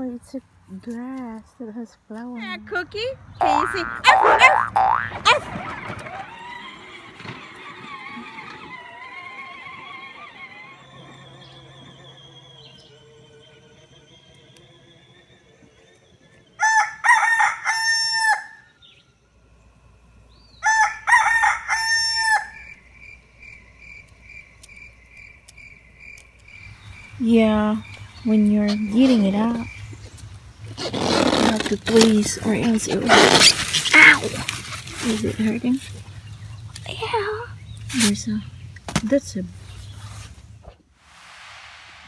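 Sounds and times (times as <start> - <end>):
rooster crowing: 16.6 - 18.7, 20.6 - 22.8.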